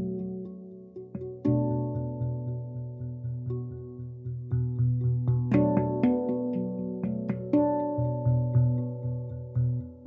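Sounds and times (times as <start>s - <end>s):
handpan notes ringing: 0.0s - 10.0s
low pulsing handpan note: 0.0s - 10.0s.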